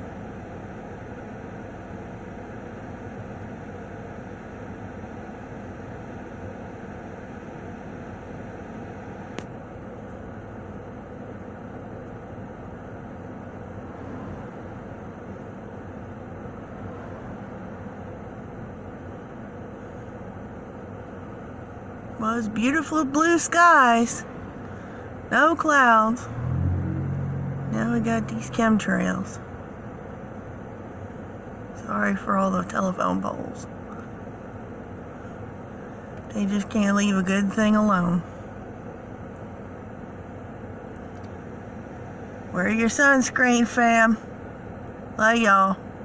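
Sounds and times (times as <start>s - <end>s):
car road and engine noise: 0.0s - 46.0s.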